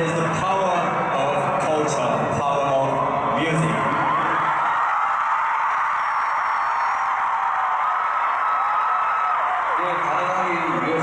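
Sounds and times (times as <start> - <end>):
stadium crowd screaming and cheering: 0.0 - 11.0.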